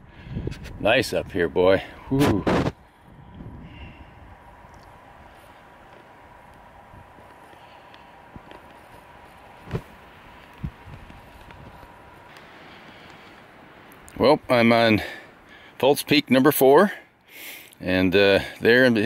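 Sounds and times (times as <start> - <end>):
faint thin high hum: 0.0 - 15.8
faint steady hiss: 0.0 - 19.0.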